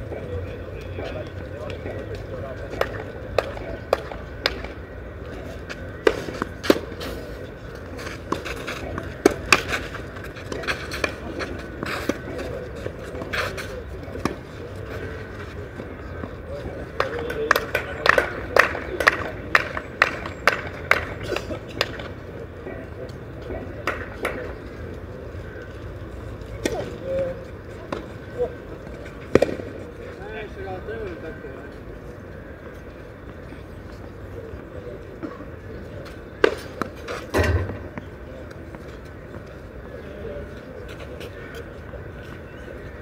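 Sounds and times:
tennis balls struck by rackets: 0:01.6 - 0:15.2, 0:15.8 - 0:22.8, 0:23.4 - 0:24.6, 0:26.5 - 0:27.0, 0:27.8 - 0:30.0, 0:36.3 - 0:39.5.

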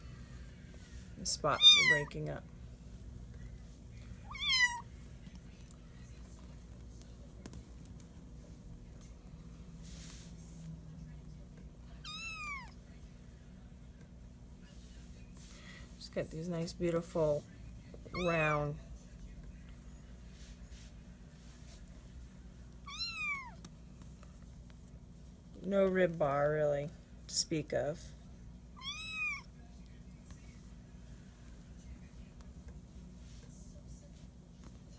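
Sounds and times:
kitten mewing: 0:01.6 - 0:02.1, 0:04.2 - 0:04.9, 0:12.0 - 0:12.8, 0:22.9 - 0:23.6, 0:28.8 - 0:29.5.

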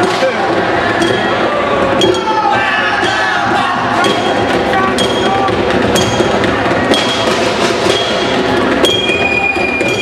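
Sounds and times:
clinking metallic strikes: 0:00.0 - 0:10.0
crowd voices: 0:00.0 - 0:10.0
percussion ensemble playing: 0:00.0 - 0:10.0.

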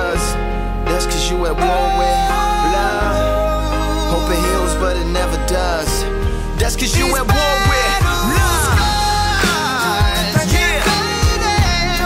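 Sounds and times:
hip-hop pop song: 0:00.0 - 0:12.0
deep kick drums: 0:06.6 - 0:09.4.

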